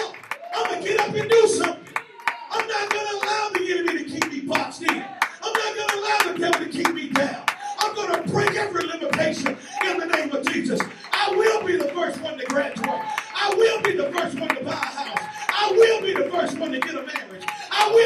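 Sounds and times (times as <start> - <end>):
hands clapping a steady beat: 0.0 - 18.0.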